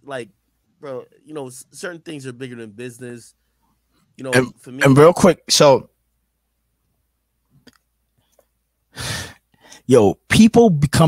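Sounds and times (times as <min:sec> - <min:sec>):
man exhaling into microphone: 0:09.0 - 0:09.8.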